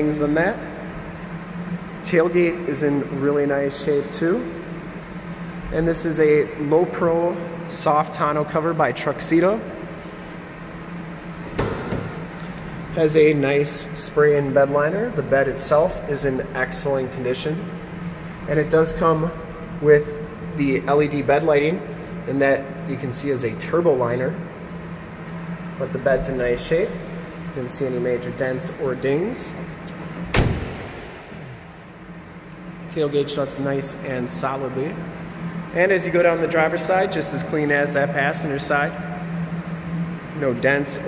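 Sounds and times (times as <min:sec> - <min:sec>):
steady low hum: 0:00.0 - 0:41.0
short clunk: 0:11.5 - 0:12.2
tailgate slamming shut: 0:11.5 - 0:12.2, 0:30.3 - 0:31.1.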